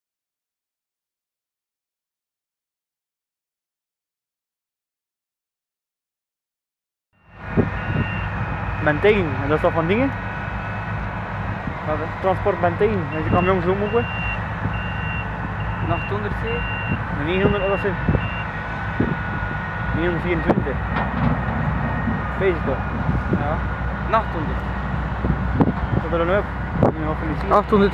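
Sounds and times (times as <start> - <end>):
reversing alarm beep: 7.2 - 9.1, 12.3 - 20.5
diesel machinery running: 7.2 - 27.9
steady high whine: 7.2 - 27.9.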